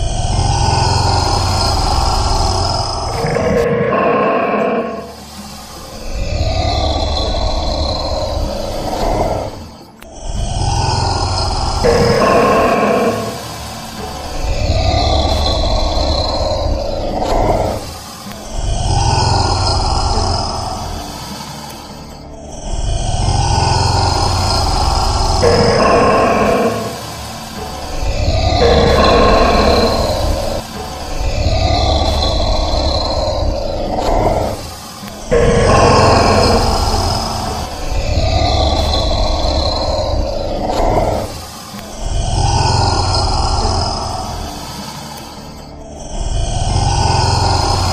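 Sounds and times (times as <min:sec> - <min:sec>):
deep growling grunts: 0:00.0 - 0:21.2, 0:22.6 - 0:44.8, 0:46.0 - 0:47.9.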